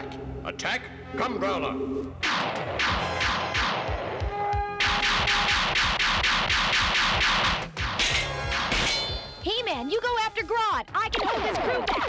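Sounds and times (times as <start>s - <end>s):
action music: 0.0s - 12.0s.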